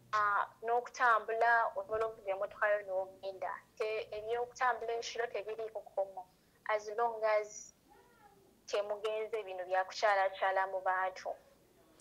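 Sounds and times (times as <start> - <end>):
woman speaking through phone speaker: 0.2 - 7.7, 8.7 - 11.4.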